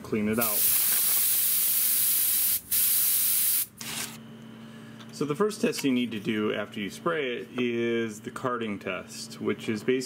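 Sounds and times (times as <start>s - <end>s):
airbrush spraying hiss: 0.4s - 3.7s.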